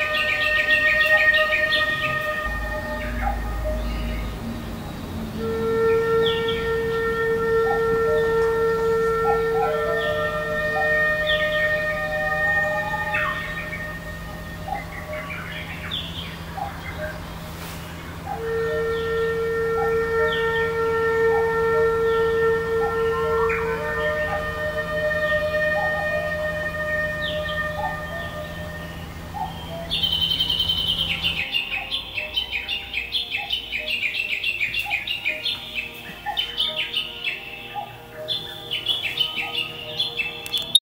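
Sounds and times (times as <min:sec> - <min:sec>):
birds chirping: 0:00.0 - 0:40.8
low steady hum: 0:00.0 - 0:40.8.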